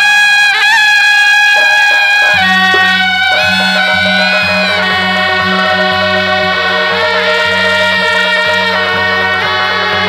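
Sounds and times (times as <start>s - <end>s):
reedy wind instrument high note: 0.6s - 10.0s.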